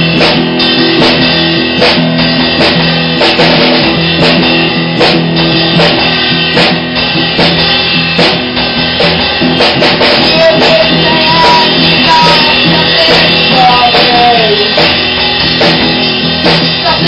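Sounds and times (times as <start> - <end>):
distorted electric guitar: 0.0 - 17.0
drum hits: 0.0 - 17.0
electric bass chords: 0.0 - 17.0.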